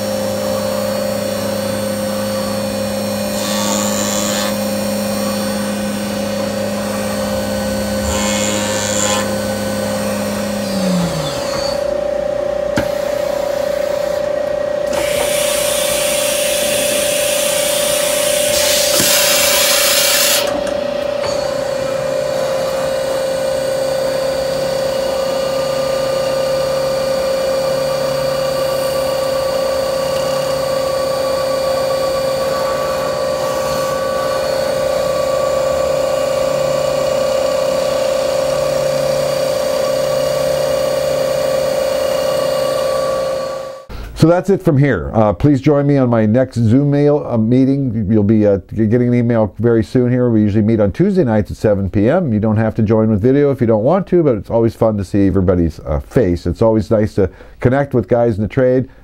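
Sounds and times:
low machine tone: 0:00.0 - 0:15.2, 0:20.4 - 0:44.4
machine spindle whine: 0:00.0 - 0:44.2
coolant hissing bursts: 0:14.9 - 0:20.5.

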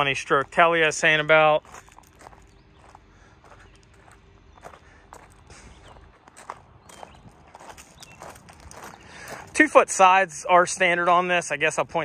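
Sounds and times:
footsteps on gravel: 0:00.0 - 0:11.4.

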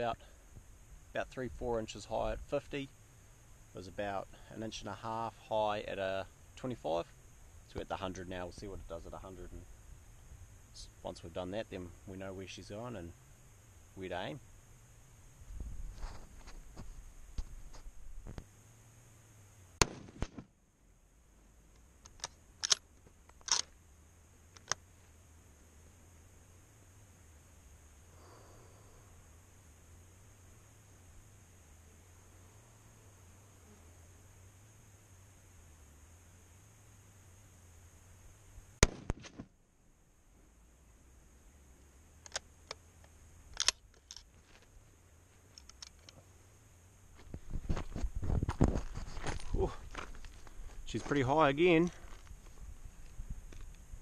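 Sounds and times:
rustling movement: 0:15.2 - 0:18.5, 0:47.1 - 0:53.9
rifle shots: 0:19.8 - 0:20.5, 0:38.8 - 0:39.4
rifle bolt metallic clicks: 0:22.0 - 0:23.7, 0:42.2 - 0:42.8, 0:43.5 - 0:44.3.

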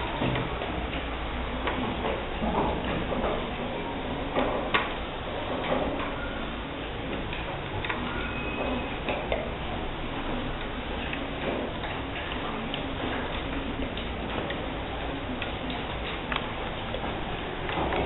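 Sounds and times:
room background noise: 0:00.0 - 0:18.0.

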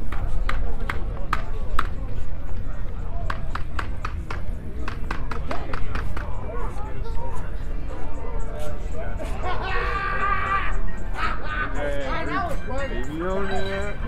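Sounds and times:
murmured voices: 0:00.0 - 0:14.0.

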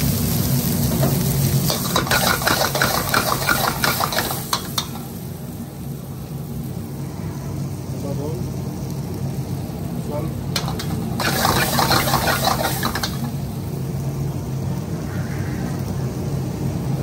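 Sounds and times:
vegetables sizzling in oil: 0:00.0 - 0:17.0
metal ladle scraping a wok: 0:01.7 - 0:04.9, 0:10.6 - 0:13.2.

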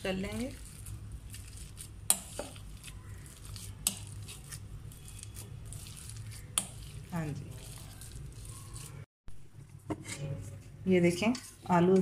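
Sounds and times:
potatoes squishing: 0:00.0 - 0:09.1.

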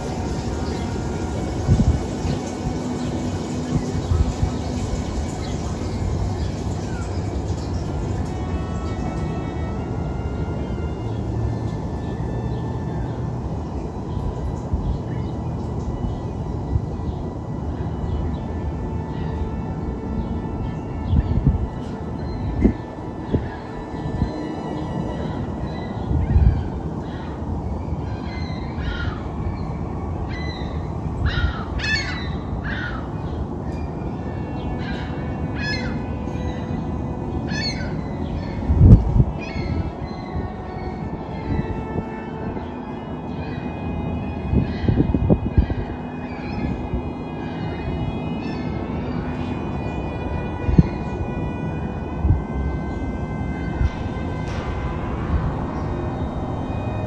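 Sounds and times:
low rumble of city noise: 0:00.0 - 0:57.0.

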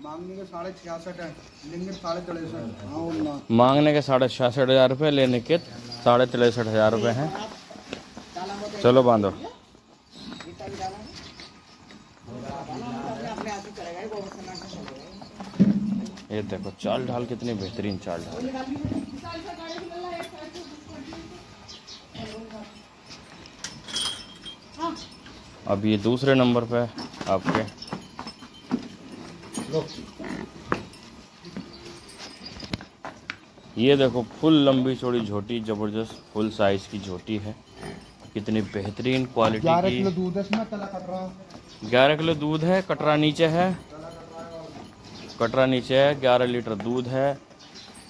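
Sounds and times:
people talking in background: 0:00.0 - 0:23.1
hooves footfalls and knocks: 0:10.0 - 0:48.0.

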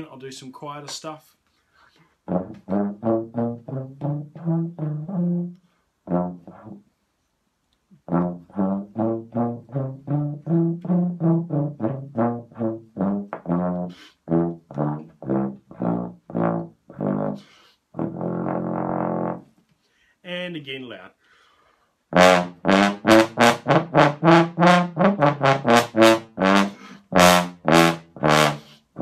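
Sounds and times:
contrabass trombone low notes: 0:02.2 - 0:06.9, 0:08.0 - 0:19.5, 0:22.1 - 0:29.0.

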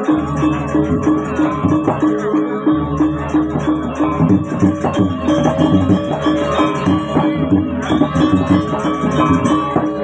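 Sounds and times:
metal keyed instruments ringing: 0:00.0 - 0:10.0.

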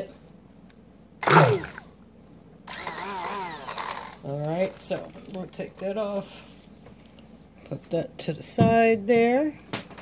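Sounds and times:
stick blender motor in batter: 0:01.2 - 0:01.8, 0:02.7 - 0:04.3.

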